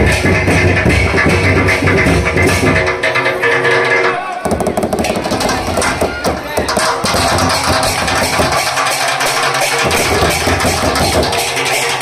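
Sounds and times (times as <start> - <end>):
large drums beaten with sticks: 0.0 - 3.3, 4.4 - 12.0
hand cymbals clashing: 6.8 - 12.0.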